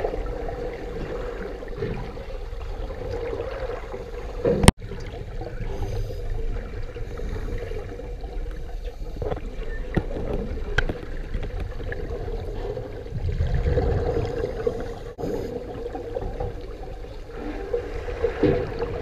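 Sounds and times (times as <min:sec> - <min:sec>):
muffled underwater rumble: 0:00.0 - 0:19.0.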